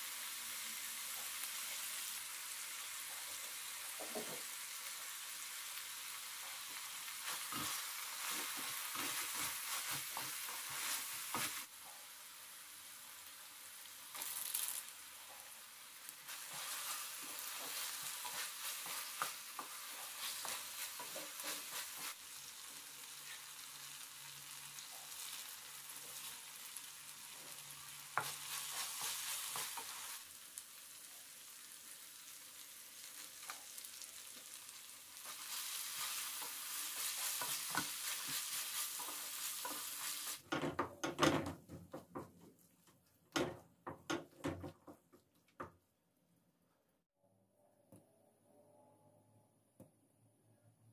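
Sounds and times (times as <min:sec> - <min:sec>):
vegetables sizzling in oil: 0:00.0 - 0:40.7
spatula scraping and tapping pan: 0:07.2 - 0:11.7, 0:16.3 - 0:22.2, 0:27.4 - 0:30.2, 0:35.3 - 0:42.6.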